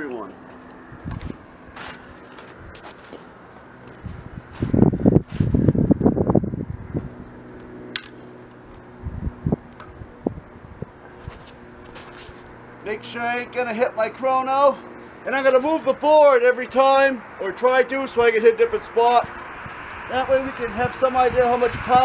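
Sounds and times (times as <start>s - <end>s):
rustling handling noises: 0.0s - 5.6s, 11.1s - 12.6s
steady low hum: 0.0s - 22.0s
sharp click: 8.0s - 8.6s.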